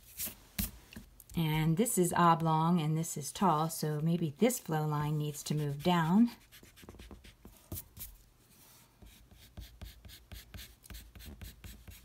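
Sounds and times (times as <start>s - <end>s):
pencil scratching on paper: 5.5s - 8.1s, 9.0s - 12.0s.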